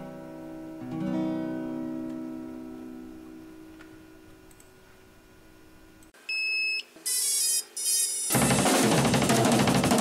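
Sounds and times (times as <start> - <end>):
short electronic beeps: 6.3 - 8.2.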